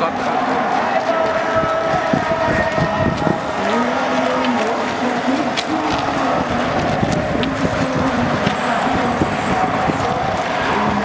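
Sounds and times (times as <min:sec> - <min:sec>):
crowd walking along a road: 0:00.0 - 0:11.0.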